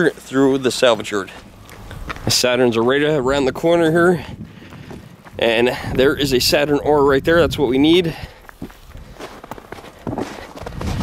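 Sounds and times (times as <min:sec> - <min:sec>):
footsteps on snow: 0:00.0 - 0:03.2, 0:04.1 - 0:06.0, 0:08.1 - 0:11.0.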